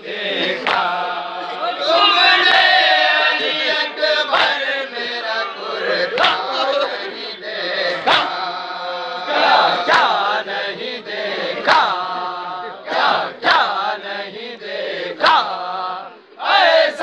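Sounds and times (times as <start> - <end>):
men chanting in unison: 0.0 - 17.0.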